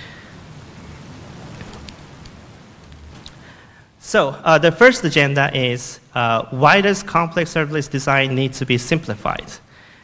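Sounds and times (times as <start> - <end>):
low hum and hiss: 0.0 - 10.0.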